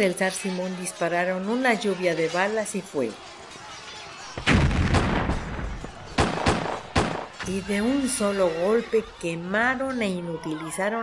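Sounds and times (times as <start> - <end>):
sharp gunshots: 4.4 - 7.5.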